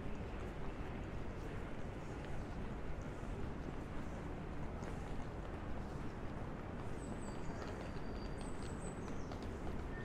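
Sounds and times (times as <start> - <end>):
low city rumble: 0.0 - 10.0.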